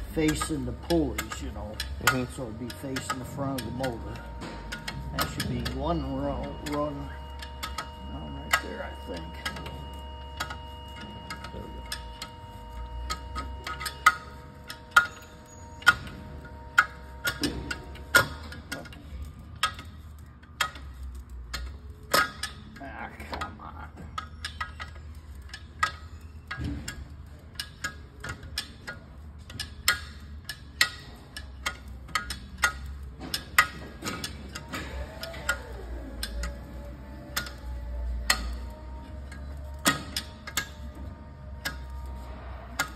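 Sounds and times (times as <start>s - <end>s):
sharp metallic clicks: 0.0s - 23.5s, 24.1s - 42.9s.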